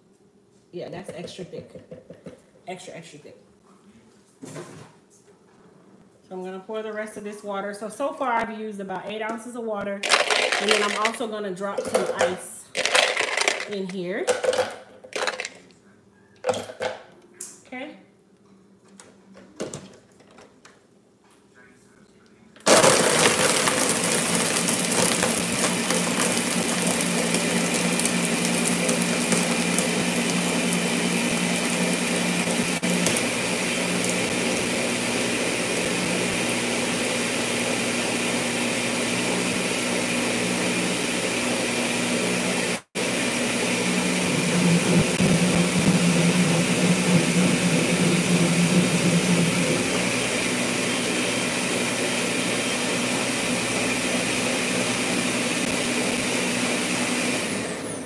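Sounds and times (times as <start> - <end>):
blender whirring: 10.0 - 11.2, 11.8 - 13.8, 22.7 - 58.0.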